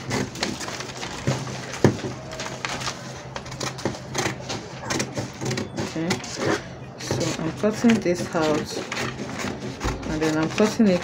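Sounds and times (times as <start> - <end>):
paper rustle: 0.0 - 11.0
scissors snipping paper: 2.4 - 11.0.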